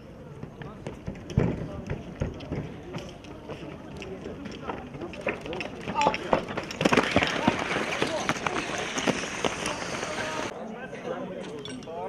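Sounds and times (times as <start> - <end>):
hubbub of voices: 0.0 - 12.0
running footsteps on rubber track: 0.3 - 10.5.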